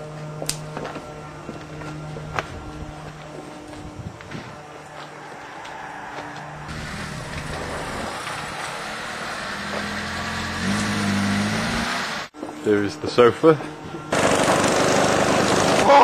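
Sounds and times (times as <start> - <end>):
vehicle engine running: 0.0 - 12.4, 13.9 - 15.8.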